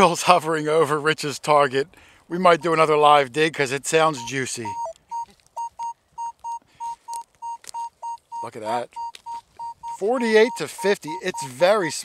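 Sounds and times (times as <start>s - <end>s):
metal detector beeping: 2.6s - 2.9s, 4.1s - 12.0s.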